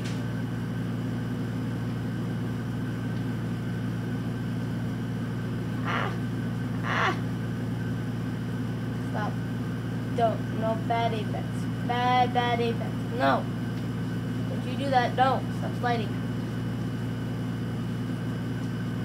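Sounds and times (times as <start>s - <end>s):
low background hum: 0.0s - 19.0s
murmurs: 5.8s - 7.3s.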